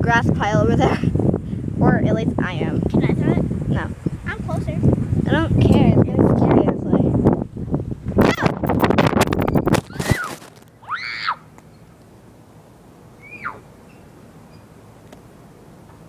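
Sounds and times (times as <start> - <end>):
phone rushing and clattering: 8.2 - 10.7
child squealing: 9.9 - 11.5, 13.2 - 13.7.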